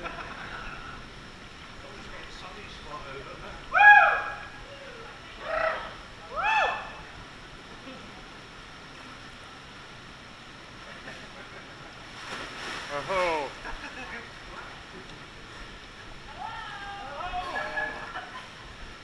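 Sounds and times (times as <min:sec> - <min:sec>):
rushing water: 0:00.0 - 0:19.0
water splash: 0:12.1 - 0:13.8.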